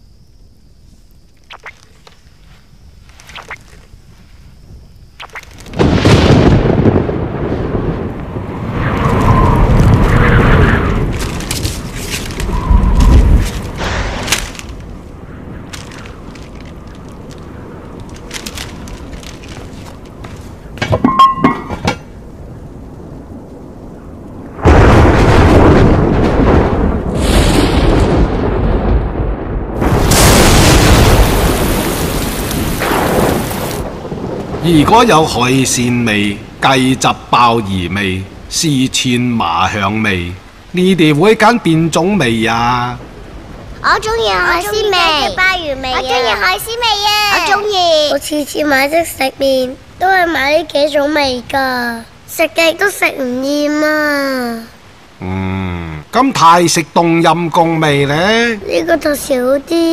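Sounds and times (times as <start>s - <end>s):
heavy rain rushing: 5.2s - 59.9s
thunder rumbling: 5.3s - 59.9s.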